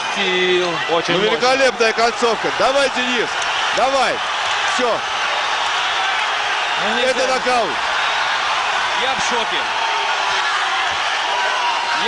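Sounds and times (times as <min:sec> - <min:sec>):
arena crowd cheering: 0:00.0 - 0:12.0.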